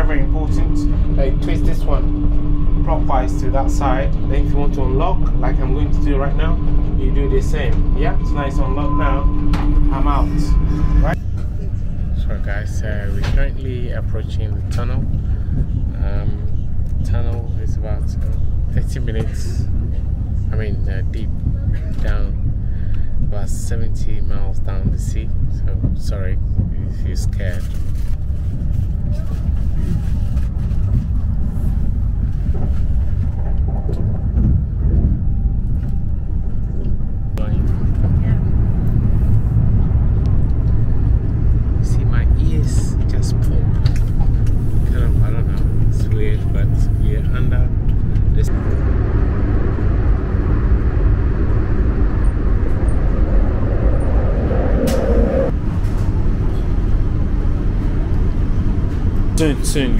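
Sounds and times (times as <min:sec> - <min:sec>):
high-speed train rumble: 0:00.0 - 0:59.9.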